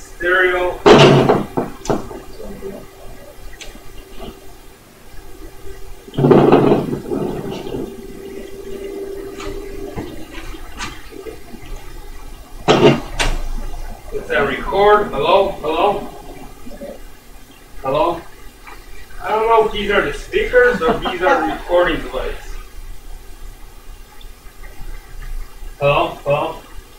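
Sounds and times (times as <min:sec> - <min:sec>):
motor hum: 0:00.0 - 0:26.9.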